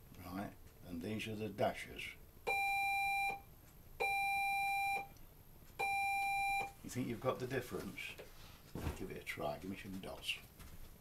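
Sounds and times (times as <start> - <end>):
morse code beeps: 2.5 - 5.1, 5.8 - 6.8.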